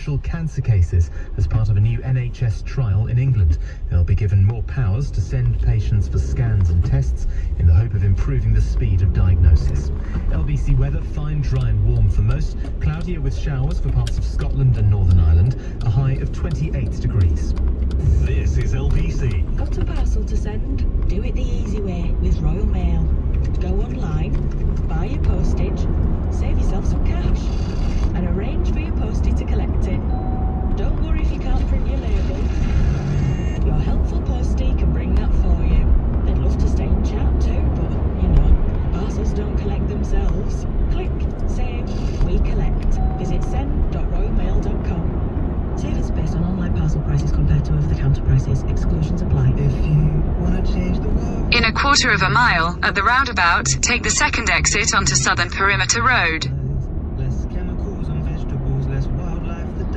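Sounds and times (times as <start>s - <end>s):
car radio playing faintly: 0.0s - 24.1s, 51.2s - 56.5s
car road and engine rumble: 0.0s - 59.9s.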